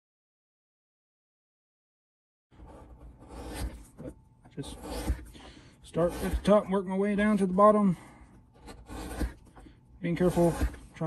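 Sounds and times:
blade scraping leather: 0:02.6 - 0:07.7, 0:08.5 - 0:11.0.

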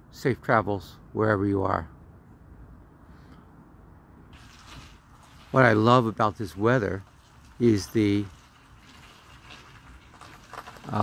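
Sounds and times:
light rain patter: 0:04.3 - 0:11.0.

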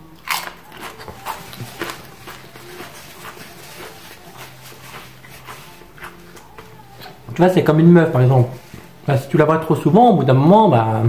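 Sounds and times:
crisp crunching: 0:00.2 - 0:07.2.

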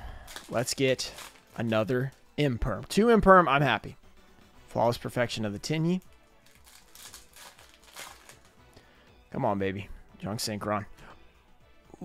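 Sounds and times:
foil wrapper crinkling: 0:00.2 - 0:01.9, 0:06.0 - 0:08.6.

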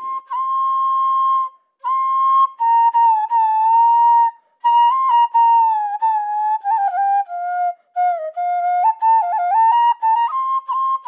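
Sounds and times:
bamboo flute long note: 0:00.0 - 0:11.0.

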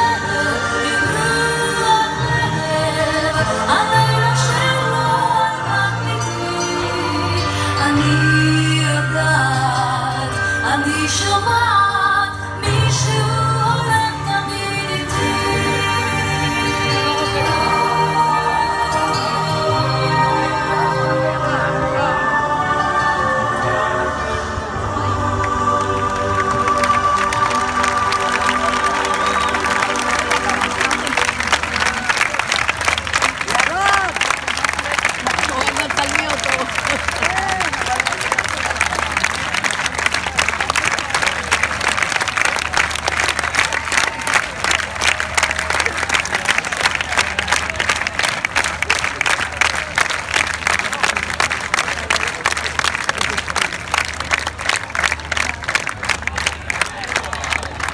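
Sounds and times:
song held notes: 0:00.0 - 0:36.7
voices: 0:23.4 - 0:39.7
audience applause and cheering: 0:24.6 - 0:57.9
dancers clapping along: 0:25.4 - 0:57.9.

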